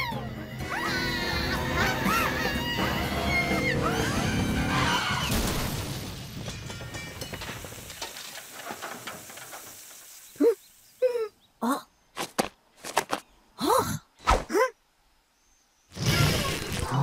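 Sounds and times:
characters screaming: 0.0 - 5.3
van crash with breaking glass: 4.1 - 10.2.

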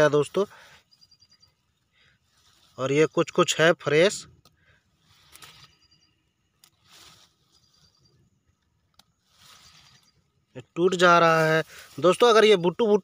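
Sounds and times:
rustling of grass and leaves: 0.0 - 13.0.

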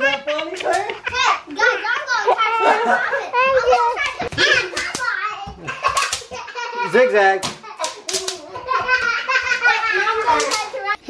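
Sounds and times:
children squealing and chattering: 0.9 - 11.0.

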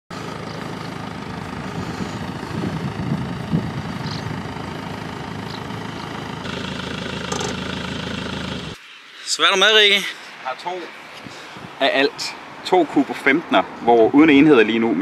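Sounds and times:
van engine idling: 0.1 - 8.8.

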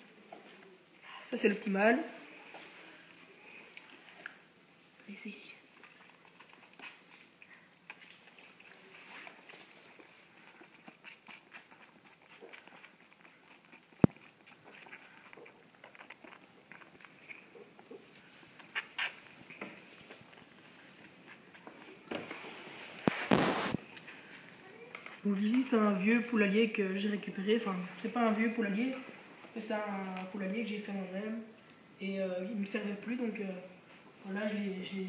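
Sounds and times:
lamb sucking from bottle teat: 5.6 - 25.3
burst of noise: 23.1 - 23.8.

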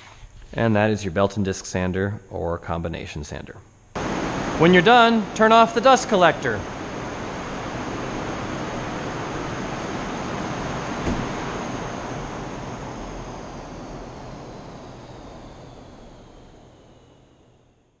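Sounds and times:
dust collector running: 4.0 - 17.9
fan winding down whine: 4.0 - 18.0.

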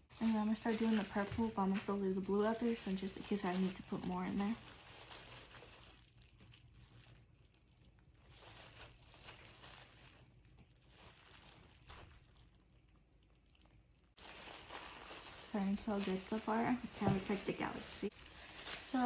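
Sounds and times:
plastic gloves and fabric rustling: 0.0 - 19.0.

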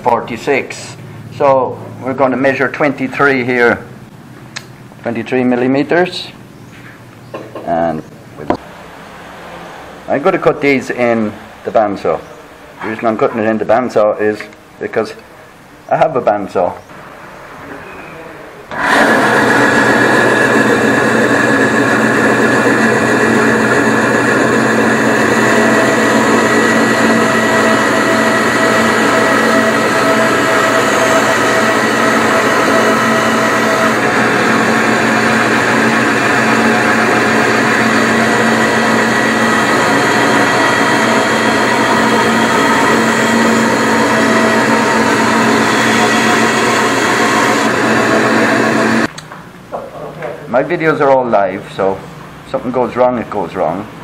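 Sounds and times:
bandsaw cutting wood: 18.7 - 49.1.

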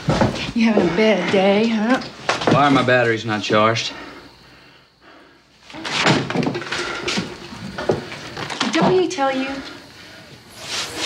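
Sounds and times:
door banging shut: 5.8 - 6.9.

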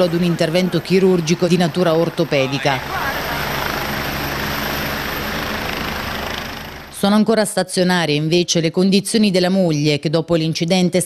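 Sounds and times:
helicopter running: 0.0 - 9.3.

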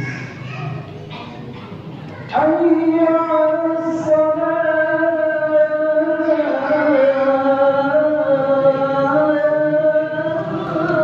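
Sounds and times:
man chanting call to prayer: 2.3 - 11.0.

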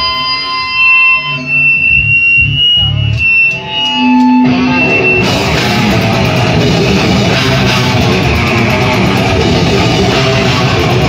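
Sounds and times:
loud electric guitar: 0.0 - 11.0
bass and drum hits: 1.9 - 3.2, 4.4 - 11.0.

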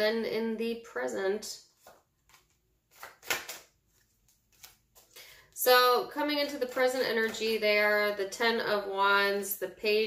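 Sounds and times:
cards tapping and rustling: 1.8 - 5.4, 6.4 - 7.6.

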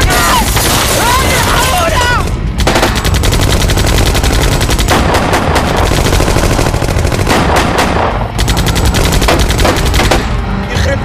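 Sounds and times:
automatic gunfire: 2.6 - 10.4.

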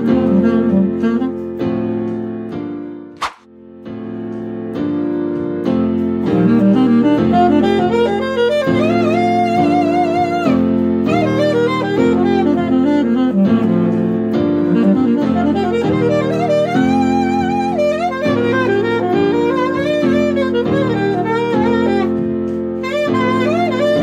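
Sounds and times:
alto saxophone playing fast runs: 0.0 - 2.0, 6.3 - 24.0.

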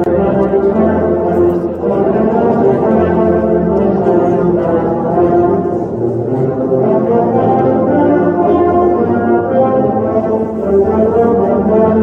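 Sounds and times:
brass ensemble playing chords: 0.0 - 12.0.

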